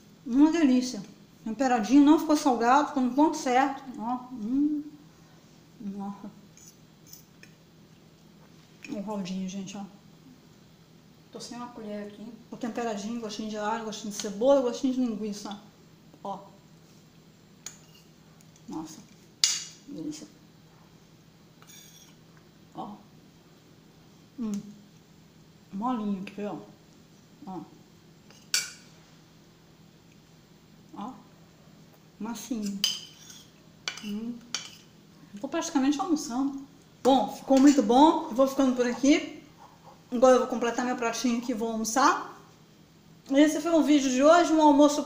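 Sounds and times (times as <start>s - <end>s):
fork clicking on plate: 32.7s - 34.9s.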